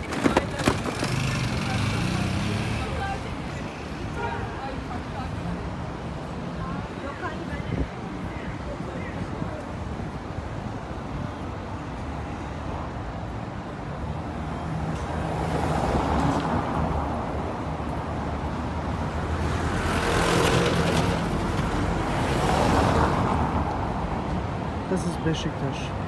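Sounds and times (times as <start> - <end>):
cars passing over cobblestones: 0.0 - 26.0.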